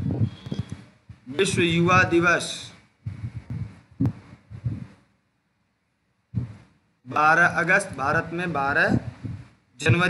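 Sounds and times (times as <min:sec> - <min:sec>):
dull low thumps: 0:00.0 - 0:02.3, 0:03.0 - 0:05.0, 0:06.3 - 0:06.6, 0:08.9 - 0:10.0.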